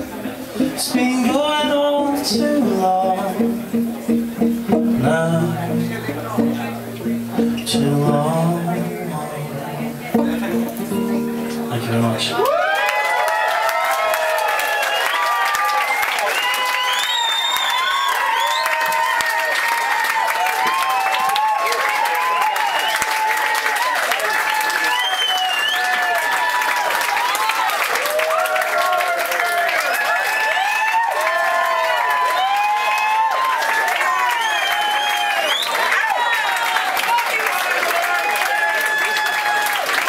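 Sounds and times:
audience clapping: 12.0 - 40.0
people whooping and shouting: 12.4 - 40.0.

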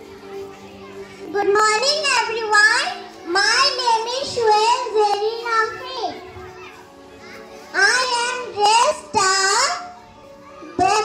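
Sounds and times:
children chattering: 0.0 - 11.0
girl speaking through microphone: 1.3 - 6.8, 10.6 - 11.0.

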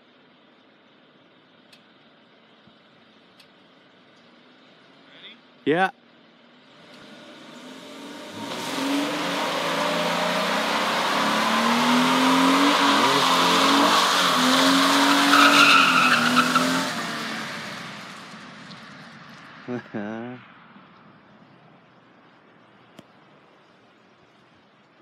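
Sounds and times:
truck engine at high revs: 6.6 - 18.4
tyres squealing: 10.7 - 16.8.

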